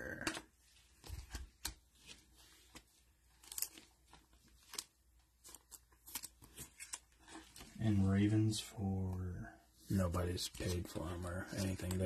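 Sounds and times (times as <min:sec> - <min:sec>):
cards clicking and snapping: 0:00.2 - 0:07.1.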